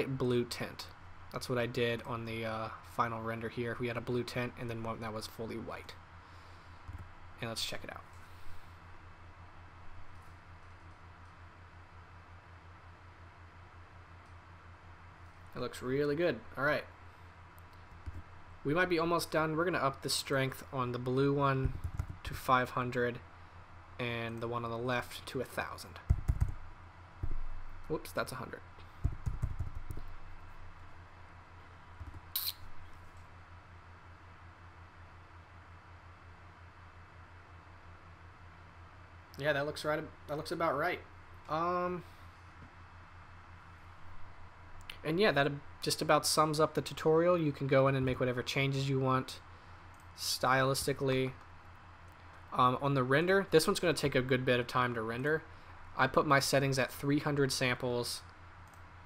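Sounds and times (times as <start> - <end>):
low pulsing hum: 3.7 - 39.2
steady hiss: 15.3 - 33.3.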